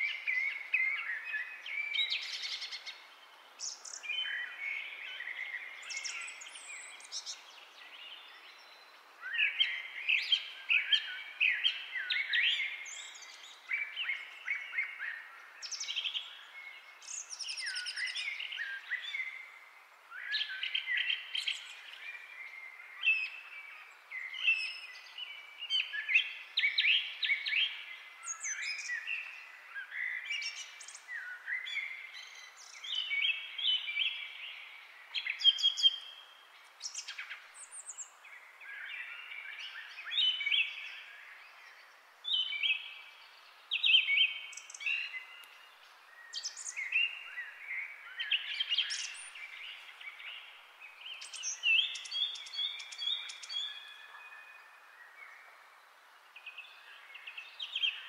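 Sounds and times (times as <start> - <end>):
faint steady hiss: 0.0 - 58.0
songbirds chirping and trilling: 0.0 - 58.0.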